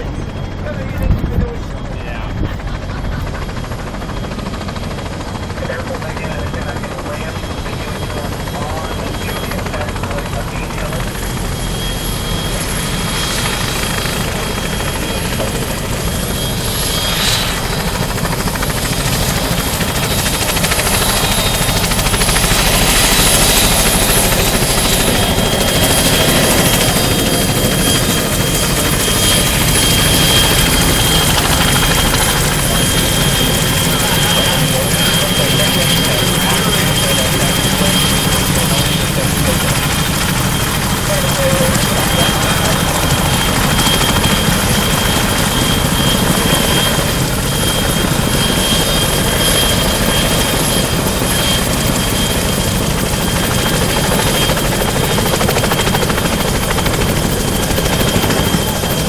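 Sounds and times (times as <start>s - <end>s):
helicopter engine whine: 0.0s - 59.0s
helicopter rotor rumble: 0.0s - 59.0s.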